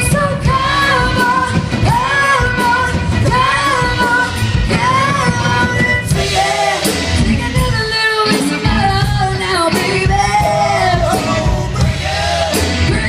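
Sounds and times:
woman singing: 0.0 - 11.8, 12.8 - 13.0
drums: 0.0 - 13.0
electric bass: 0.0 - 13.0
electric guitar: 0.0 - 13.0.

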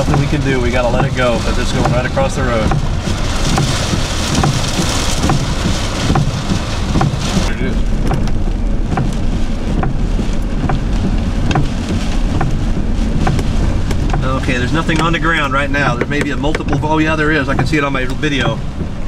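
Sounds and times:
rain beating on a vehicle: 0.0 - 19.0
raindrops tapping on glass: 0.0 - 19.0
wind: 0.0 - 19.0.

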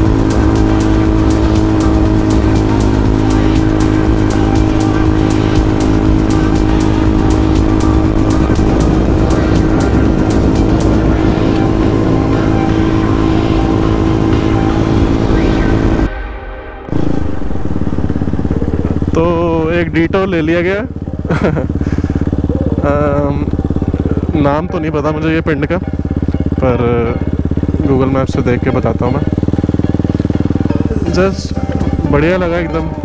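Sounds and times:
motorcycle engine running steadily: 0.0 - 16.1, 16.9 - 33.0
man speaking: 18.6 - 21.0, 22.8 - 25.8, 30.9 - 32.9.

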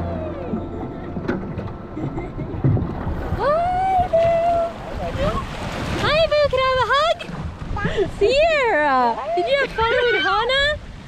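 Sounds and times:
water sloshing and splashing: 0.5 - 11.0.

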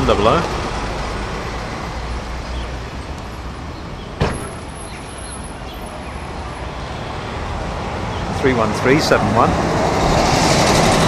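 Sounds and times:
bus engine rumbling: 0.0 - 11.0
street traffic: 0.0 - 11.0.

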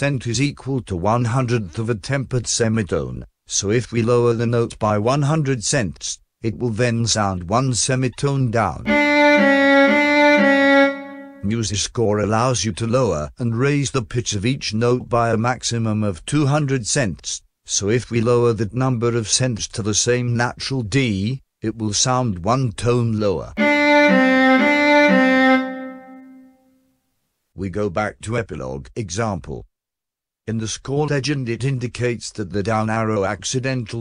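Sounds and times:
synthesized viola notes: 8.9 - 11.6, 23.6 - 26.5.

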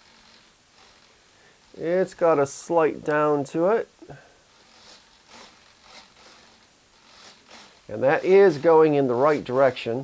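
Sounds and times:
servo rasping buzzes: 0.0 - 3.4, 4.1 - 10.0.

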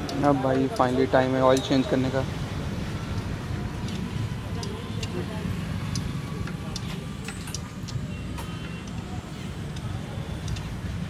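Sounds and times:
light clicks and clinks: 6.0 - 10.7.

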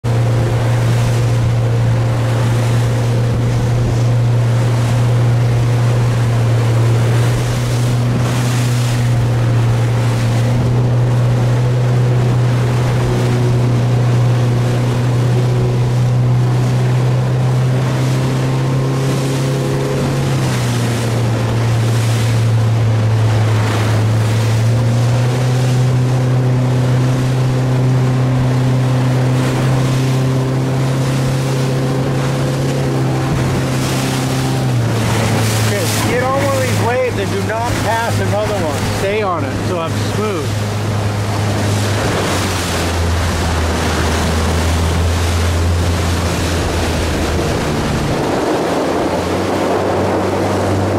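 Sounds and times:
choppy water: 0.0 - 50.9
motorboat engine running: 0.0 - 50.9.

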